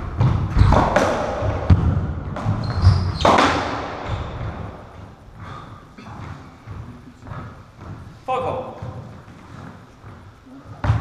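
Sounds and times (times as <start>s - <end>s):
footsteps on wooden floor: 4.1s - 11.0s.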